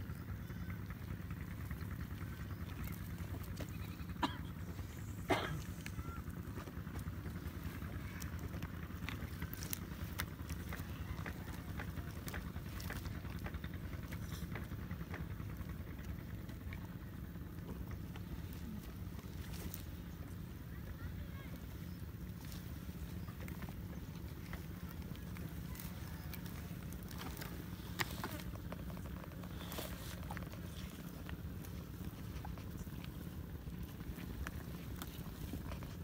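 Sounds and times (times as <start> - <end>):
crackles and snaps: 0.6 - 36.0.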